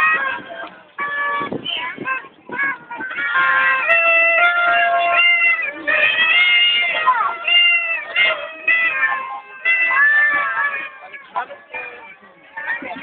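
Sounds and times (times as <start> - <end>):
children singing long notes: 0.0 - 13.0.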